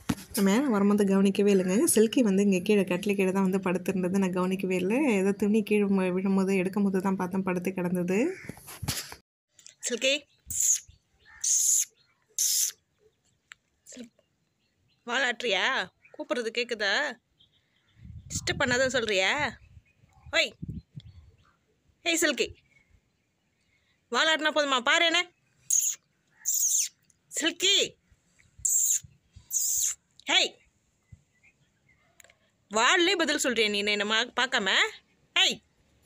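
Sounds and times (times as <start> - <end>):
person hissing psst: 10.5 - 10.8, 11.4 - 12.8, 28.7 - 30.0.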